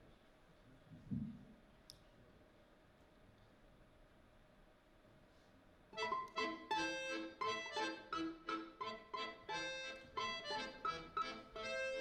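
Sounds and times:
accordion chords: 0:06.0 - 0:12.0
plucked balalaika notes: 0:06.0 - 0:12.0.

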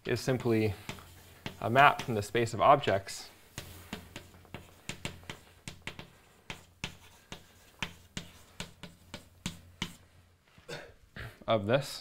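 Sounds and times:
chalk tapping and scratching: 0:00.0 - 0:10.2.

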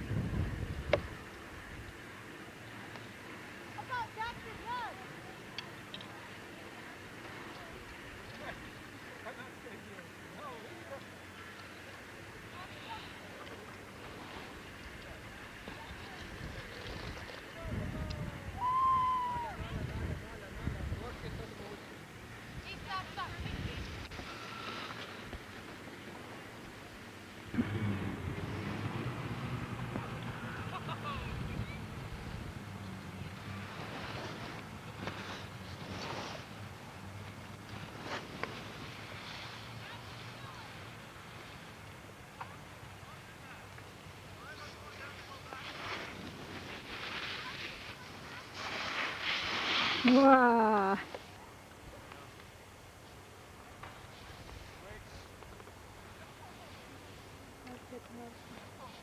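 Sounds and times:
low rumble of wind on microphone: 0:00.0 - 0:02.0, 0:13.9 - 0:25.6, 0:26.4 - 0:41.4
faint indistinct voices: 0:00.5 - 0:59.0
skis hissing over snow: 0:06.1 - 0:17.7, 0:20.2 - 0:27.6, 0:28.4 - 0:59.0.

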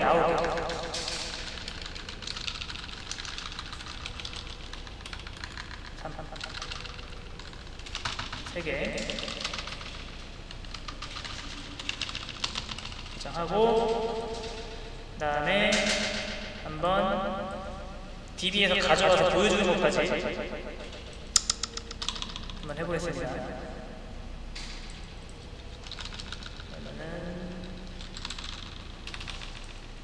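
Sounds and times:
computer keyboard typing: 0:00.0 - 0:14.8, 0:20.8 - 0:22.7, 0:25.3 - 0:29.8.

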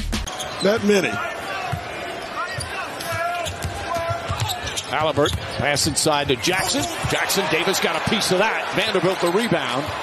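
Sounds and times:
arena crowd noise: 0:00.1 - 0:10.0.

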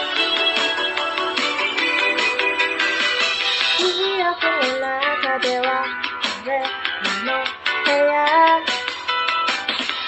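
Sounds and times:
instrumental backing track with guitar: 0:00.0 - 0:10.0
woman singing karaoke: 0:03.7 - 0:09.2.

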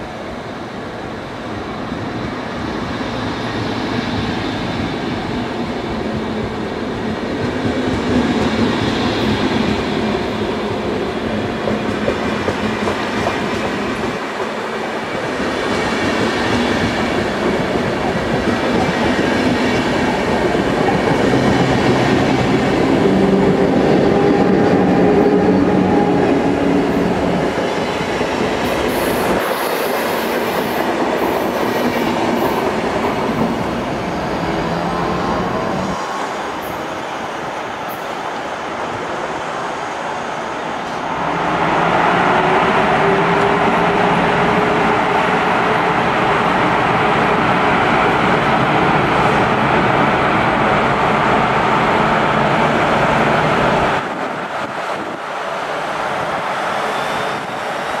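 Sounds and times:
train wheels rolling on rails: 0:00.2 - 0:58.0
high wheel squeals: 0:56.7 - 0:58.0.

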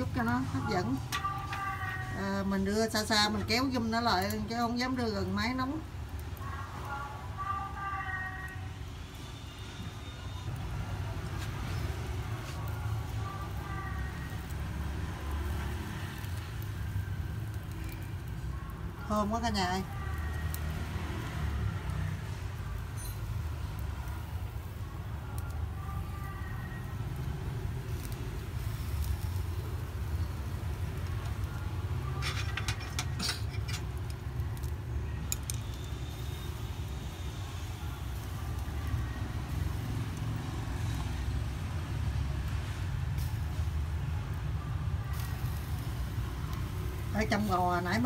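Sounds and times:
chopsticks tapping wire grill: 0:32.0 - 0:35.8.

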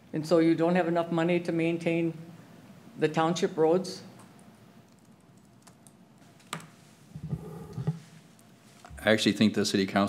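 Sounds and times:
keyboard clicks: 0:04.2 - 0:06.7.

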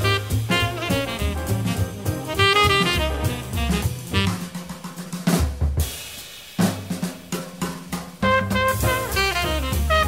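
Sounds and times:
string bass: 0:00.0 - 0:04.2
horns playing: 0:00.0 - 0:04.5, 0:08.2 - 0:10.0
jazz drum kit: 0:00.0 - 0:10.0.

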